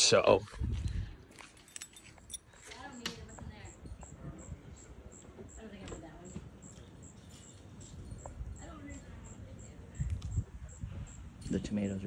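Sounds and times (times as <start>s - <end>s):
faint voices: 2.6s - 12.0s
high insect chirping: 3.2s - 12.0s.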